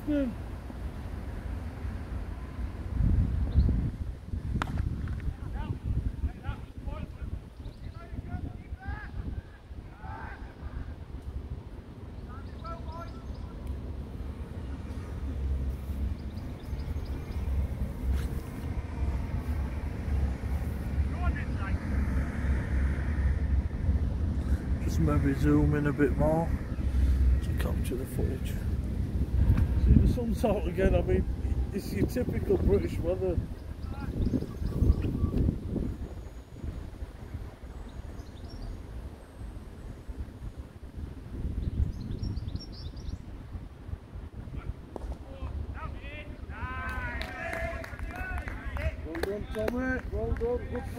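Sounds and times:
wind buffeting microphone: 0.0s - 50.9s
birds chirping: 3.4s - 4.0s, 5.2s - 43.6s, 45.3s - 50.9s.

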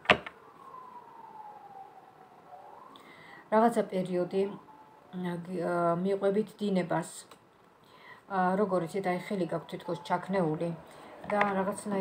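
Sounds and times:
distant siren-like wail: 0.0s - 6.8s, 8.3s - 12.0s.

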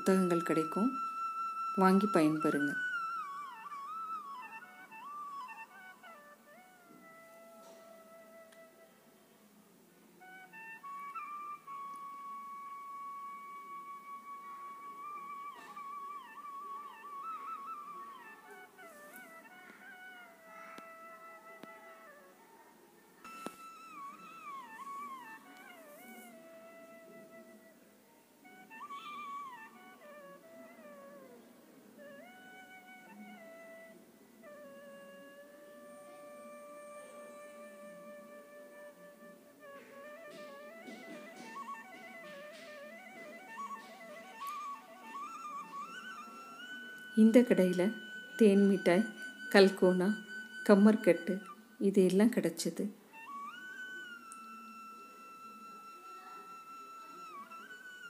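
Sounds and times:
quiet instrumental melody: 0.0s - 58.0s.

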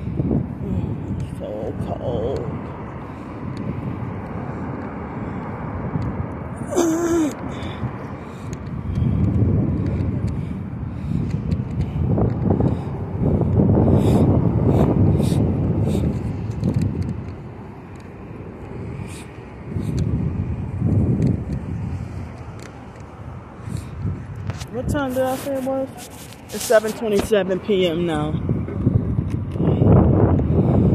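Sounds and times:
vehicles passing with low rumble: 0.0s - 30.9s.

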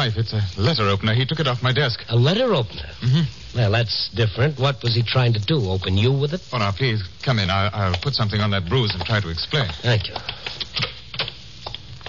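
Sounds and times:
sharp clicks and knocks: 8.8s - 11.9s.

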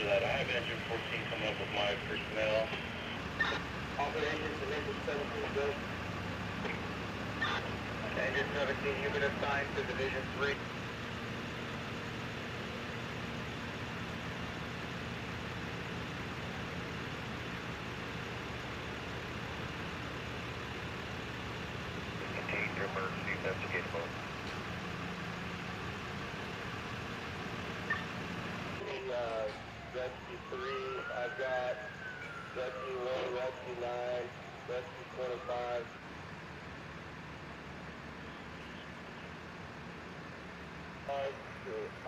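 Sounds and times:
vehicle engine idling: 0.0s - 42.0s
faint voice: 22.2s - 24.1s.

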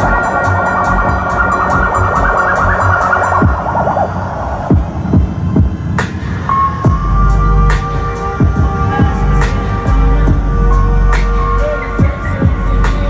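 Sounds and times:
sharp hit: 0.0s - 10.5s
warbling siren-like synth: 0.0s - 12.8s
falling bass sweeps: 0.0s - 13.0s
heavy bass: 0.0s - 13.0s
steady synth tone: 0.0s - 13.0s.

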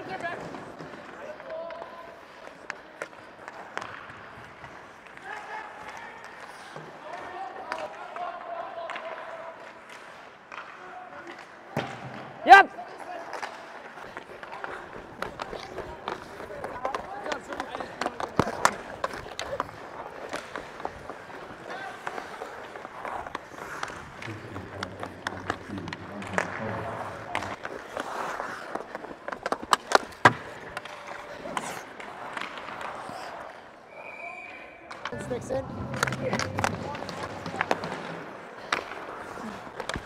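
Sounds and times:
hockey sticks and puck clacking: 0.0s - 33.8s, 34.8s - 40.0s
skates scraping on ice: 0.0s - 33.9s, 34.9s - 40.0s
short whistle: 33.9s - 34.8s.

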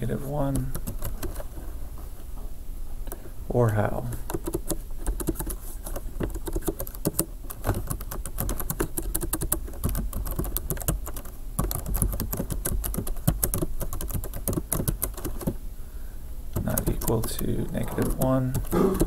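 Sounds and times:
computer keyboard typing: 0.5s - 1.5s, 4.1s - 15.6s, 16.6s - 19.0s.

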